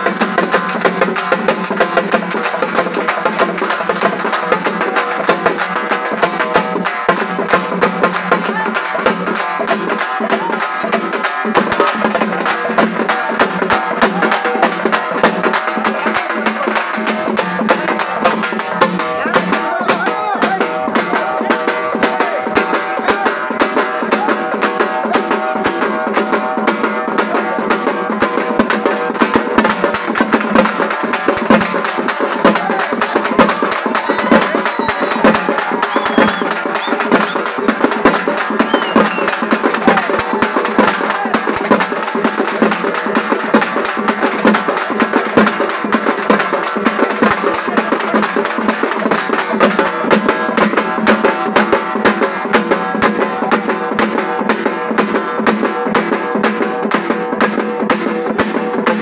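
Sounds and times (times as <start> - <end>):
hand drums beaten with sticks: 0.0 - 59.0.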